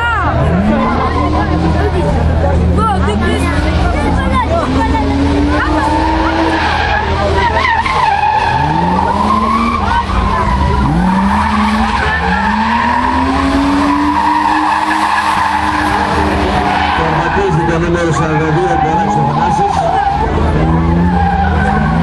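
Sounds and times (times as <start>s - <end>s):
car engine revving: 0.0s - 22.0s
tyres squealing: 0.0s - 22.0s.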